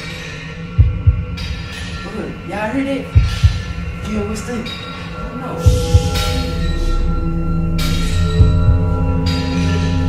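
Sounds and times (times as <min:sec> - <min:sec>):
steady low hum: 0:00.2 - 0:10.0
heartbeat double thump: 0:00.8 - 0:01.5, 0:05.7 - 0:06.6, 0:07.8 - 0:09.2.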